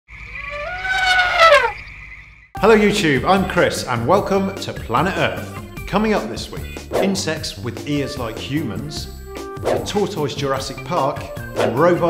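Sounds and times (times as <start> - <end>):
synthesized rising tones: 0.2 - 2.0.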